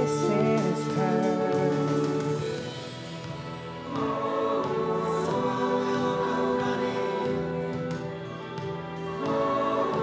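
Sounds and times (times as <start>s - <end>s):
choir and orchestra chords: 0.0s - 10.0s.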